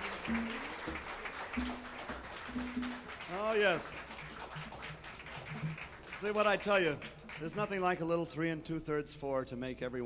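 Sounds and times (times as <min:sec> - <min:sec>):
low murmur of crowd: 0:00.0 - 0:07.6.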